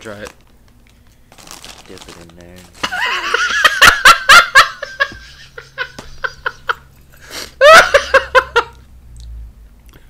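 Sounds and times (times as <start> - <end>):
men laughing: 2.8 - 8.8.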